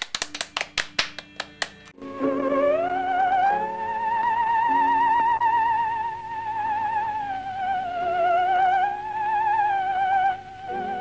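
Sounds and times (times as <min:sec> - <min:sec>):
people clapping hands: 0:00.0 - 0:01.9.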